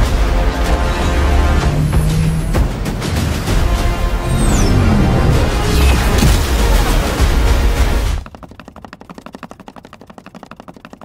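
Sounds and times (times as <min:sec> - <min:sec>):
paddle ball rapid taps: 0:08.0 - 0:11.0.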